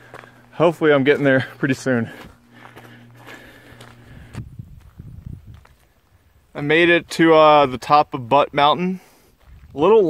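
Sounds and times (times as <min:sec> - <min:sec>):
footsteps on gravel: 0:00.0 - 0:08.3, 0:09.0 - 0:10.0
faint low hum: 0:00.0 - 0:10.0.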